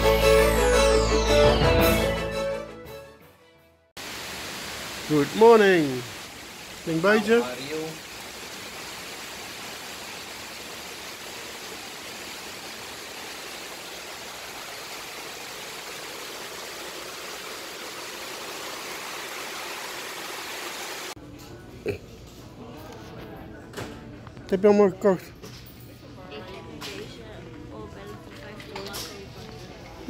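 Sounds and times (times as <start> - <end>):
heavy rain pouring: 4.0 - 21.2.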